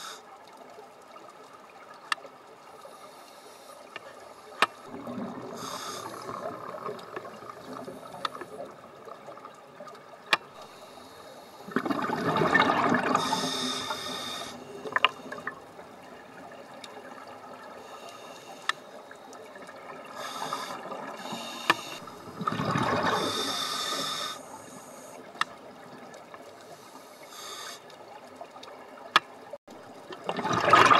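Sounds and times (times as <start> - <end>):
regulator inhalation hiss: 0.0 - 0.2, 2.9 - 4.6, 5.5 - 6.5, 10.6 - 11.7, 13.2 - 14.8, 17.8 - 19.0, 20.2 - 22.1, 23.2 - 25.4, 26.7 - 27.9
regulator bubbling exhalations: 11.6 - 15.6.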